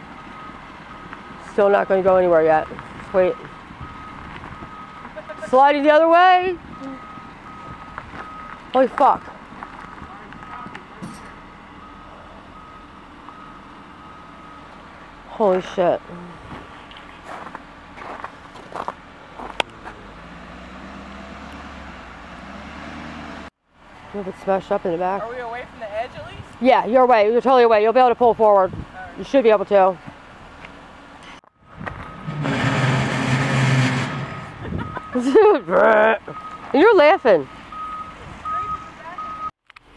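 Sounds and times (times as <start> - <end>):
backup alarm tone: 1.6 - 9.2, 34.7 - 39.6
truck engine revving hard: 19.4 - 23.5, 32.0 - 36.5
truck engine running: 27.3 - 39.4.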